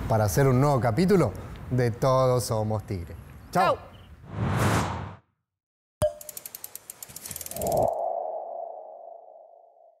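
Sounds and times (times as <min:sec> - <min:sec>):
rapid ticks: 0:06.1 - 0:07.9.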